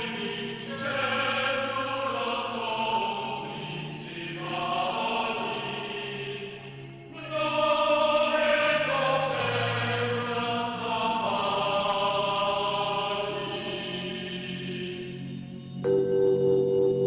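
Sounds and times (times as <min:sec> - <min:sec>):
choir chanting held notes: 0:00.0 - 0:16.9.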